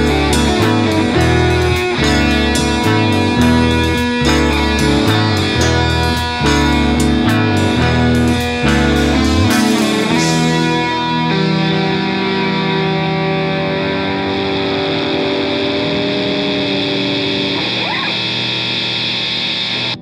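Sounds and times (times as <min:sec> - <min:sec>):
rock band sustained chord: 0:00.0 - 0:20.0.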